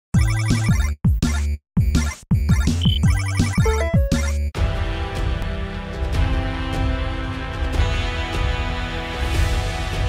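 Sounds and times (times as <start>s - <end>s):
chiptune music with bleeping notes: 0.2s - 4.6s
rising run of beeps: 2.0s - 4.6s.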